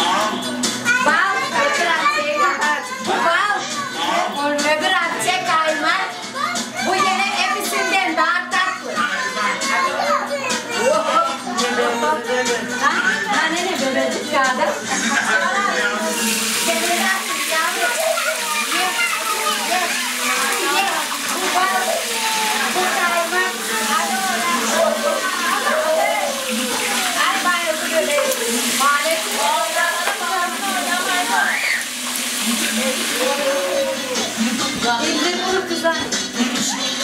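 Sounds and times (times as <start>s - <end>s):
women and children talking: 0.0s - 37.0s
crowd noise hiss: 14.8s - 37.0s.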